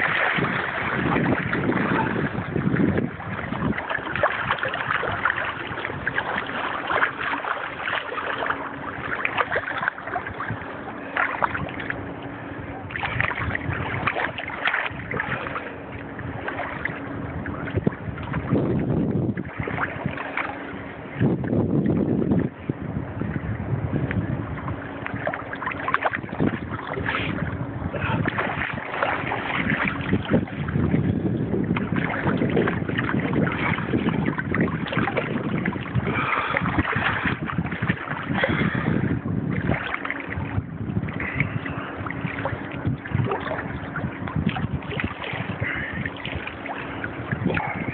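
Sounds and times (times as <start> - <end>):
sea water sloshing and lapping: 0.0 - 47.9
wind buffeting microphone: 0.0 - 47.9.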